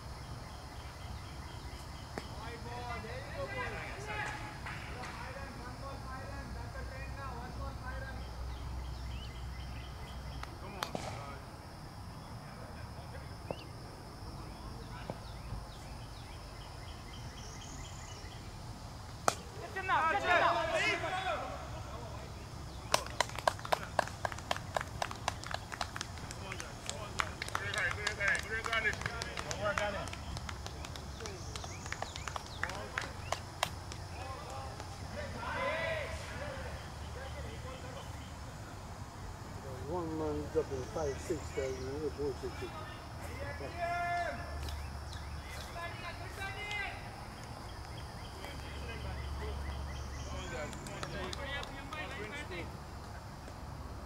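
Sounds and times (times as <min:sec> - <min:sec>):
players calling out: 0:01.8 - 0:08.7, 0:19.3 - 0:52.8
sharp claps: 0:10.4 - 0:11.2, 0:22.8 - 0:35.0, 0:50.5 - 0:52.4.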